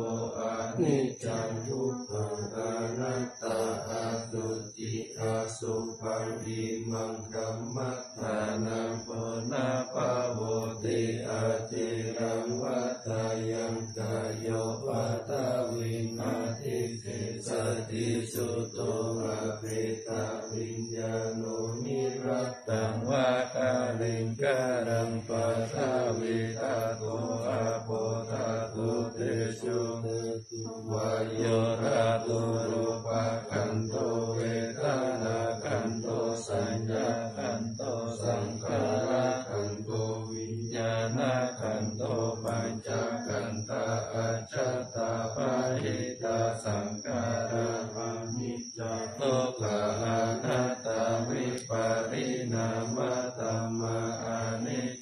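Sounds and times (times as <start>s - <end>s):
monks chanting in unison: 0.0s - 55.0s.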